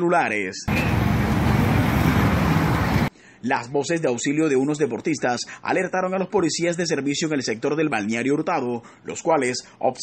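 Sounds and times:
street noise rush: 0.7s - 3.1s.

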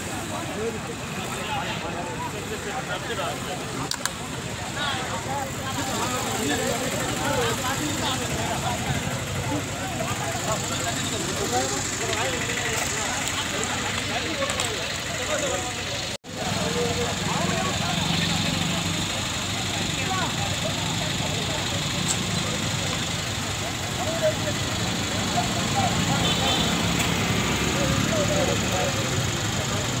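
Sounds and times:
crowd talking: 0.0s - 30.0s
vehicle engine idling: 0.0s - 30.0s.

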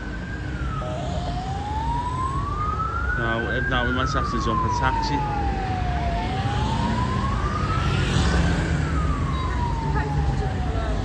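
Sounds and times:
siren wailing: 0.0s - 11.0s
street traffic rumble: 0.0s - 11.0s.

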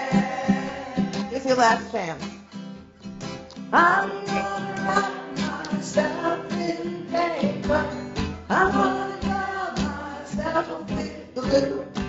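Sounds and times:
woman singing: 0.0s - 2.0s, 3.8s - 12.0s
strummed acoustic guitar: 0.0s - 12.0s.

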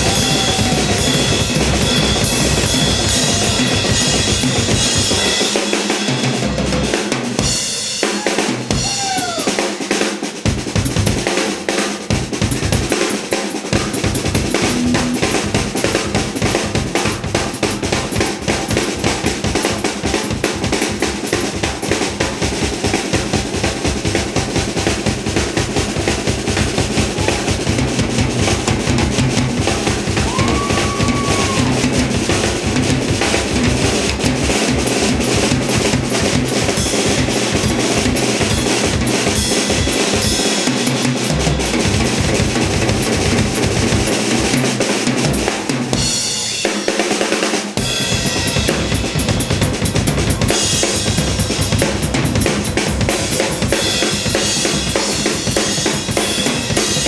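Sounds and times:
cymbals: 0.0s - 10.2s, 10.8s - 21.9s, 45.2s - 57.0s
drum kit solo: 0.0s - 57.0s.

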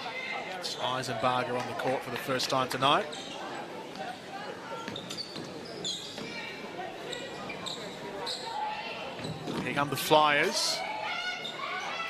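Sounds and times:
sneaker squeaks: 3.0s - 3.6s, 4.7s - 9.8s.

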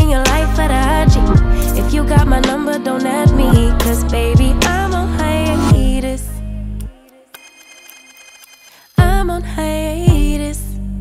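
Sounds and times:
music: 0.0s - 7.2s, 9.0s - 11.0s
electronic telephone ring: 7.4s - 8.8s.

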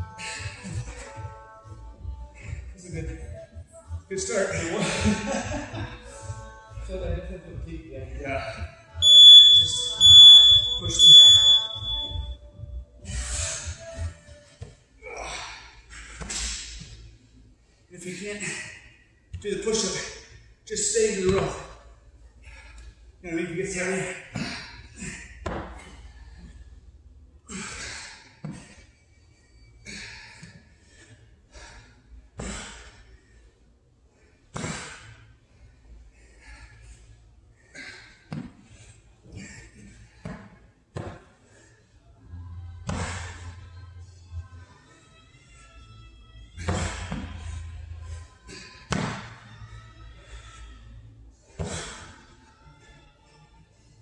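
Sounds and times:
background music: 0.0s - 18.4s, 40.7s - 54.0s.

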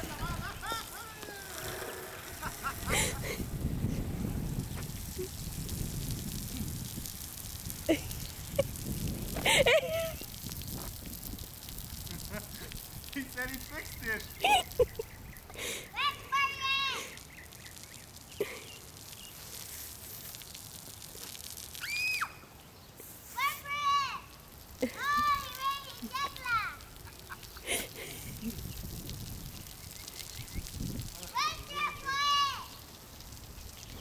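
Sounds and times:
children squealing: 0.0s - 3.4s, 21.8s - 22.4s
lawn sprinkler water spray hiss: 0.0s - 34.0s.

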